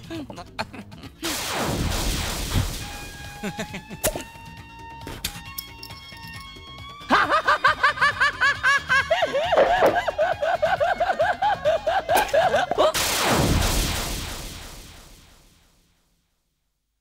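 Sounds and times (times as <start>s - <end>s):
man cackling laugh: 0.0s - 1.2s, 3.4s - 4.1s, 7.1s - 13.0s.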